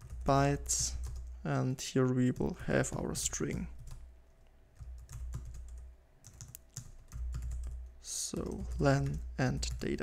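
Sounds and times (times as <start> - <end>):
typing on a keyboard: 0.0 - 1.3, 4.8 - 10.0.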